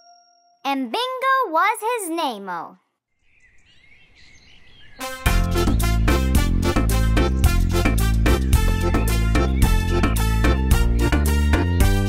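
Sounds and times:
faint birdsong: 0:03.0 - 0:06.4.

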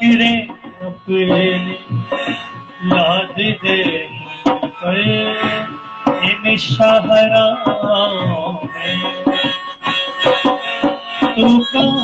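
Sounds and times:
dholak hand drum beat: 0:00.0 - 0:12.0
harmonium reed chords: 0:00.0 - 0:12.0.

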